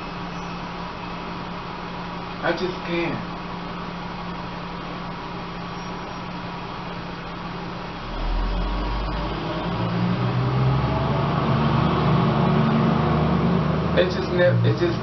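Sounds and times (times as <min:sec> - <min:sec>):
low engine rumble: 0:00.0 - 0:15.0.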